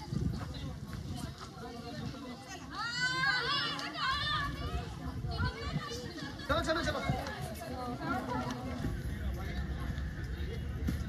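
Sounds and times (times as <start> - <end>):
children calling and chattering: 0.0 - 11.0
outdoor background noise: 0.0 - 11.0.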